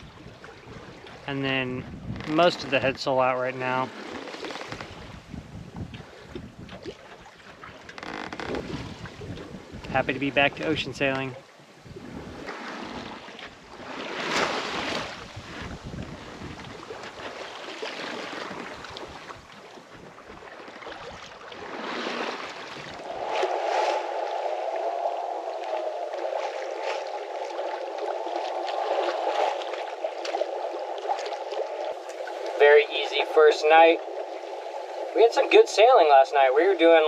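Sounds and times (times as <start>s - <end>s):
water splashing along a boat hull: 0.0s - 37.0s
wind: 0.0s - 37.0s.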